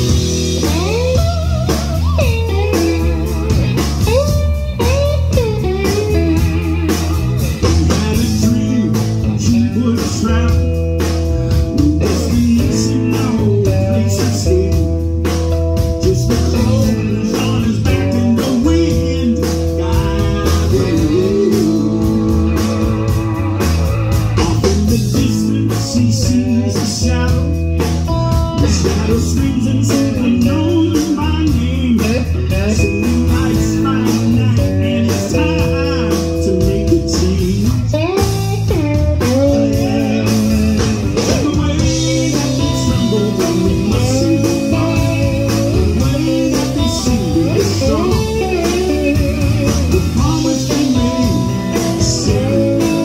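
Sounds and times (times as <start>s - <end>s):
drums with a steady beat: 0.0s - 53.0s
electric bass: 0.0s - 53.0s
electric guitar: 0.0s - 53.0s
man singing into a microphone: 2.6s - 15.1s, 15.8s - 53.0s.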